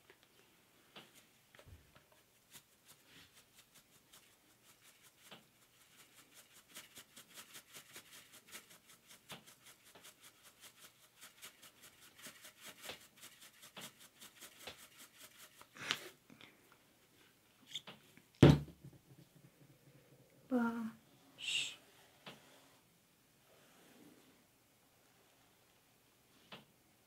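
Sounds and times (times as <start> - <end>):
loud thump: 18.4 - 19.7.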